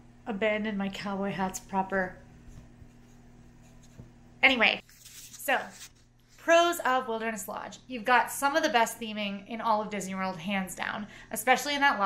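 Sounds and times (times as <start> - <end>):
woman speaking: 0.3 - 2.2, 4.4 - 12.0.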